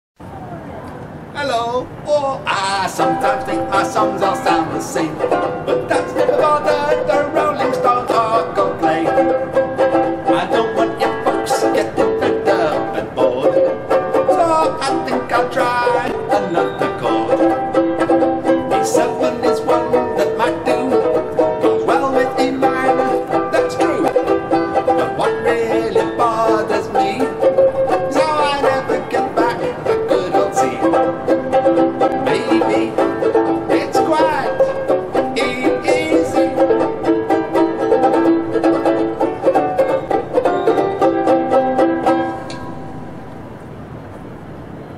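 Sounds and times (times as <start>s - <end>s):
man singing: 1.3s - 9.4s, 10.2s - 17.8s, 18.4s - 31.2s, 31.9s - 36.8s
banjulele strumming: 2.5s - 44.0s.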